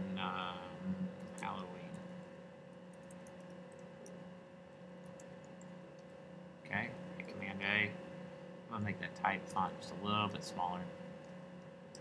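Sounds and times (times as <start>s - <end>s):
electrical hum: 0.0s - 12.0s
keyboard typing clicks: 2.9s - 4.2s, 5.0s - 6.2s, 11.2s - 12.0s.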